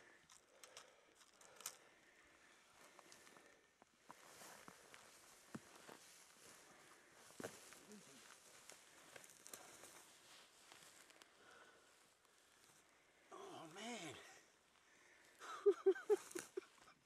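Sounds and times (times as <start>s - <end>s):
footsteps brushing through long grass: 4.0s - 12.8s.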